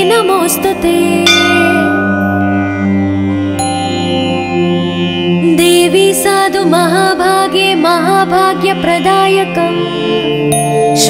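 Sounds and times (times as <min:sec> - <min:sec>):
steady drone: 0:01.0 - 0:07.0
bell-like chime: 0:01.3 - 0:05.0.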